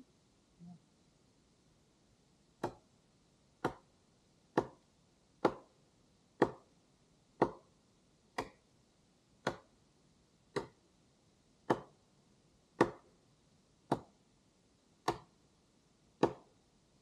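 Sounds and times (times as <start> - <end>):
axe chopping wood: 2.6 - 2.9, 3.6 - 3.9, 4.5 - 4.8, 5.4 - 5.8, 6.4 - 6.7, 7.4 - 7.8, 8.4 - 8.6, 9.4 - 9.7, 10.5 - 10.8, 11.6 - 12.0, 12.8 - 13.1, 13.9 - 14.2, 15.0 - 15.4, 16.2 - 16.5.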